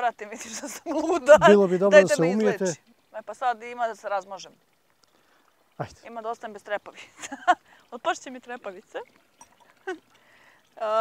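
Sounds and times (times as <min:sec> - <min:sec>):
person speaking loudly: 0:01.0 - 0:02.8.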